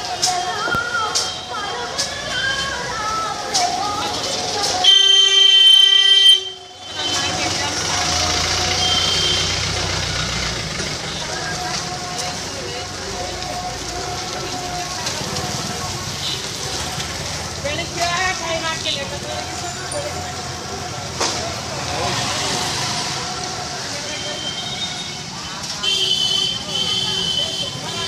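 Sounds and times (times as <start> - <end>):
traffic: 0.0 - 28.0
voices: 0.0 - 28.0
vehicle horn blaring: 4.8 - 7.4, 8.8 - 9.6.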